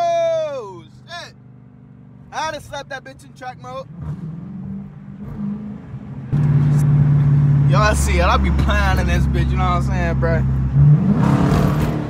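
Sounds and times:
car engine under full throttle: 0.0 - 12.0.

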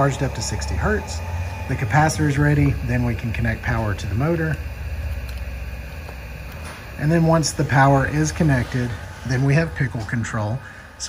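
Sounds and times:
electrical drive humming: 0.0 - 11.0.

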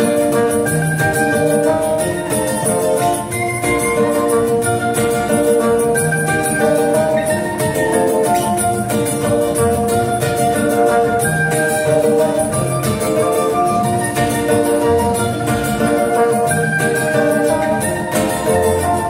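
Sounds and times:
acoustic guitars: 0.0 - 19.0
fiddle: 0.0 - 19.0.

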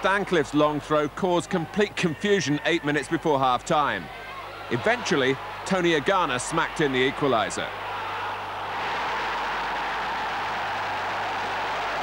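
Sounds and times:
stadium crowd cheering: 0.0 - 12.0.

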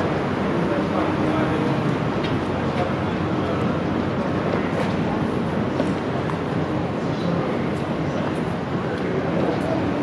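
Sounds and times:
city street rumble: 0.0 - 10.0.

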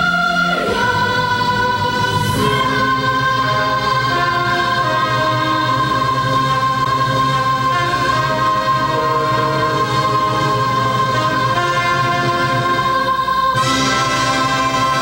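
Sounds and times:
children's choir singing: 0.0 - 15.0.

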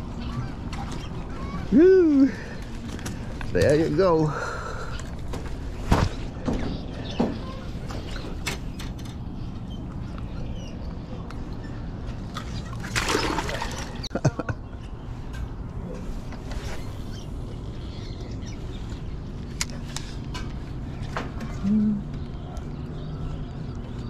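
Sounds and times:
water splash: 12.8 - 14.0.

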